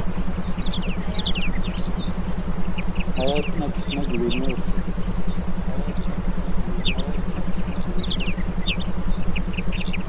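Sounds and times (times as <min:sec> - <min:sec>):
low rumble: 0:00.0 - 0:10.0
rapidly pulsing low tone: 0:00.0 - 0:10.0.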